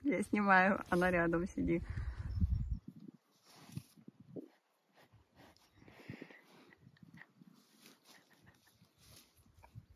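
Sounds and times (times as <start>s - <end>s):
cow sniffing: 3.4s - 9.7s.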